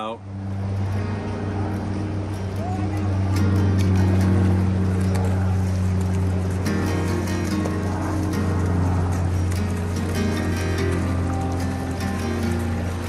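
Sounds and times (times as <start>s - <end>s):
background music with low drone: 0.0s - 13.0s.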